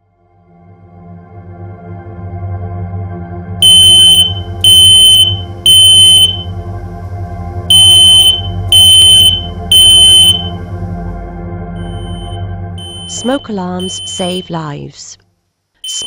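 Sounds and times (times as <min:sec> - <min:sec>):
smoke alarm high-pitched beeps: 0:03.6 - 0:06.5, 0:07.7 - 0:10.6, 0:11.8 - 0:14.6.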